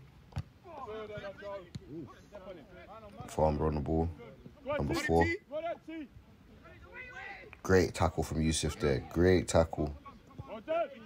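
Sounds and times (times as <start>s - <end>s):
players calling out: 0.6s - 11.0s.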